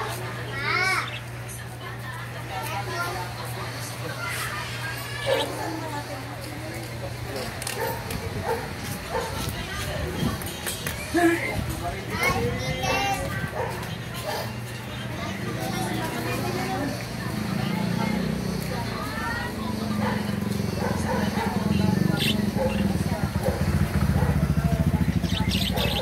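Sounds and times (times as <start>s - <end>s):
budgerigars chattering: 0.8s - 1.7s, 19.8s - 26.0s.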